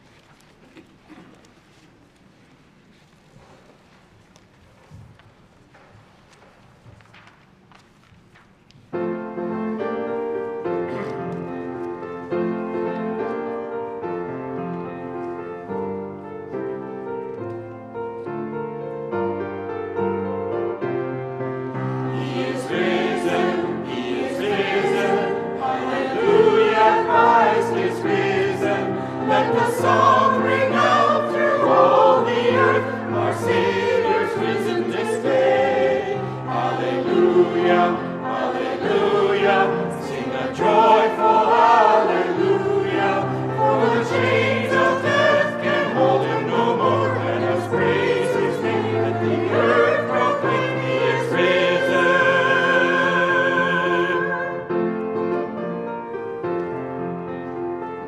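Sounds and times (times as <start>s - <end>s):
piano accompaniment: 8.8s - 58.0s
choir singing: 21.4s - 55.6s.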